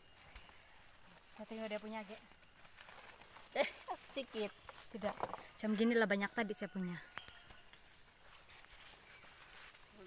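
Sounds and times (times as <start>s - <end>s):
cricket singing high note: 0.0s - 10.0s.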